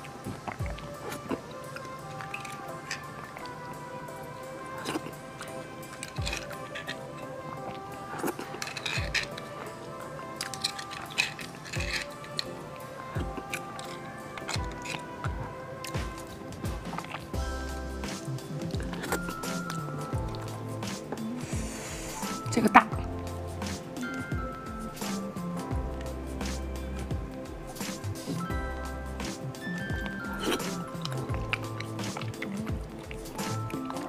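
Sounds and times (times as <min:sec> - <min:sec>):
background music with held tones: 0:00.0 - 0:34.0
metal spoon scooping bone: 0:08.1 - 0:12.7.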